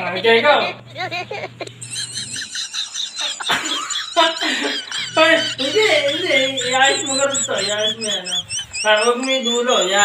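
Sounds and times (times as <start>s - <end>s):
people laughing: 0.6s - 10.0s
squealing giggles: 0.7s - 10.0s.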